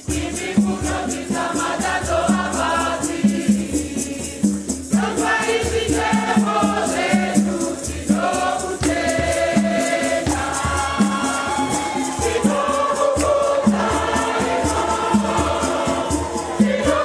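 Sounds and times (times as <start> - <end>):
choir singing a hymn: 0.0 - 17.0
rattle strokes: 0.1 - 17.0.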